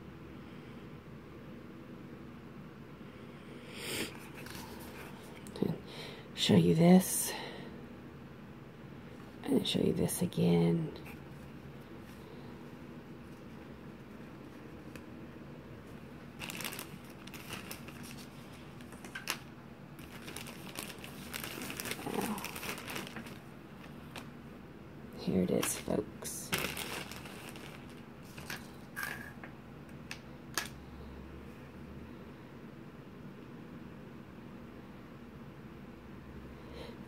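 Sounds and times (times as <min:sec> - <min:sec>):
faint low room hum: 0:00.0 - 0:37.0
yarn rustling in hands: 0:15.8 - 0:24.4, 0:25.2 - 0:29.3
packaging crinkling: 0:15.9 - 0:24.4, 0:25.4 - 0:29.3.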